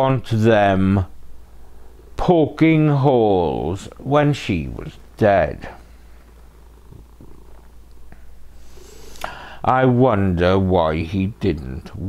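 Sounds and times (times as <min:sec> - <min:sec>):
cat purring: 0:01.0 - 0:09.6.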